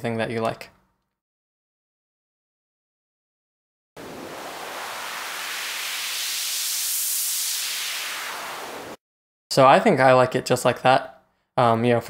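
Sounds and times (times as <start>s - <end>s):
filtered white noise synth: 4.0s - 9.0s.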